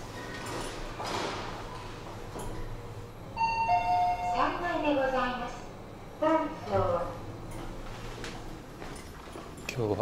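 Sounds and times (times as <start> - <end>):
lift arrival chime: 3.3 - 4.6.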